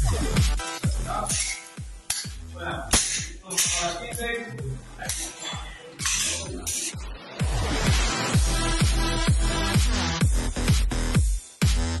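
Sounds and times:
electronic dance music: 0:00.0 - 0:02.5, 0:03.2 - 0:12.0.

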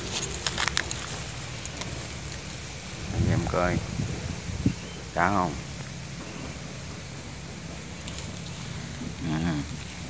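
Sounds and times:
plants rustling: 0:00.0 - 0:05.2
wind buffeting microphone: 0:00.0 - 0:10.0.

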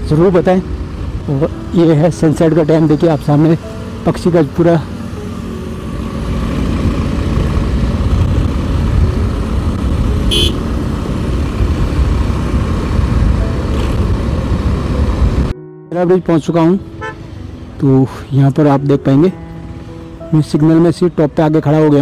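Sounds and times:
motorcycle engine: 0:00.0 - 0:15.5
surrounding traffic: 0:00.0 - 0:22.0
wind rumble on microphone: 0:06.8 - 0:10.3, 0:10.9 - 0:15.5
high-pitched horn toot: 0:10.3 - 0:10.6.

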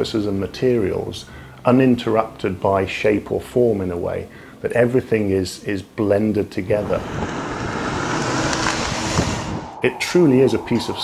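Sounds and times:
car tyre and engine noise: 0:06.6 - 0:11.0.

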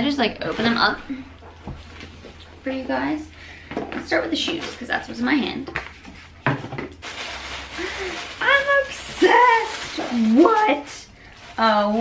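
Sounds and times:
packaging rustling: 0:05.8 - 0:12.0.

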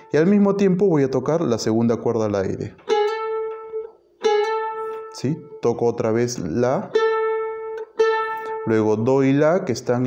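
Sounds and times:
charango notes plucked: 0:02.7 - 0:09.9.

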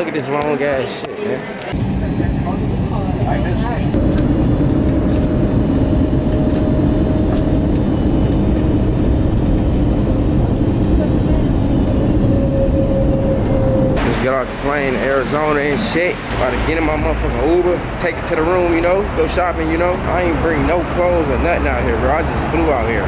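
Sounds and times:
jet engines and cabin rumble: 0:01.6 - 0:23.0.

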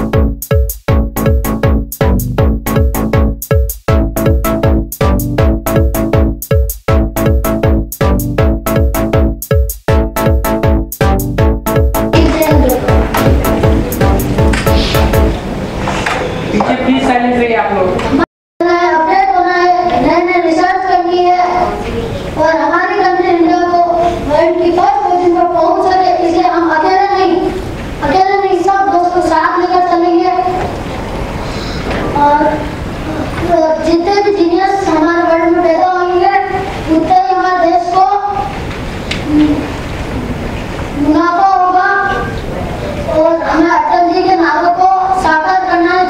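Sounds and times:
boy singing: 0:12.2 - 0:13.4, 0:32.0 - 0:38.5, 0:41.0 - 0:42.4, 0:43.1 - 0:46.0
boy singing unaccompanied: 0:12.2 - 0:13.6, 0:18.6 - 0:30.7, 0:32.1 - 0:38.5, 0:41.0 - 0:42.4, 0:43.1 - 0:46.0.

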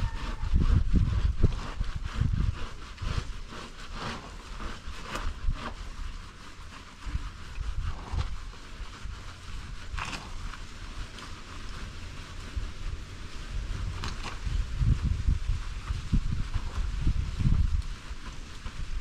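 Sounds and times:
scrubbing and splashing water: 0:00.0 - 0:19.0
wind buffeting microphone: 0:00.0 - 0:19.0.

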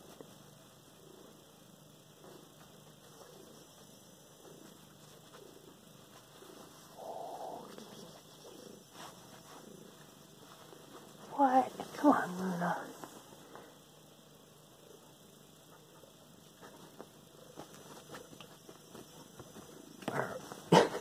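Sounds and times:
cat purring faintly: 0:00.0 - 0:21.0.

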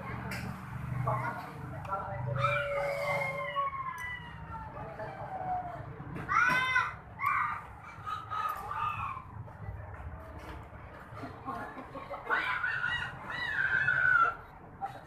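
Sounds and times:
rooster crowing: 0:02.4 - 0:05.8.

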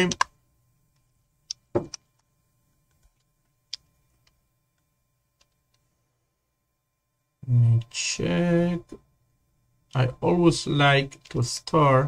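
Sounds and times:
computer keys and mouse clicks: 0:00.1 - 0:00.3.

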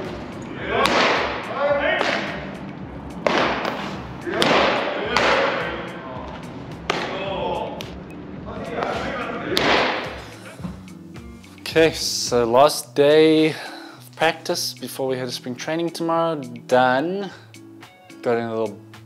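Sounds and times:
baseballs smacking into mitts: 0:00.8 - 0:02.5, 0:03.1 - 0:05.7, 0:06.3 - 0:07.2, 0:08.8 - 0:10.7.

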